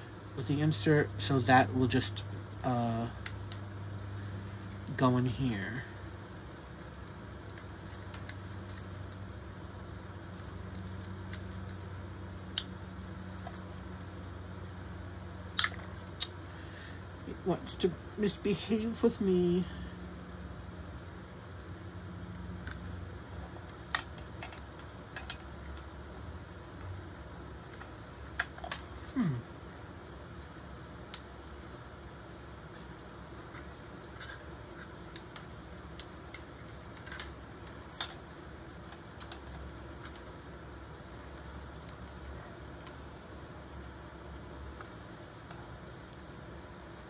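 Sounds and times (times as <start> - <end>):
faint low hum: 0.0 - 47.0.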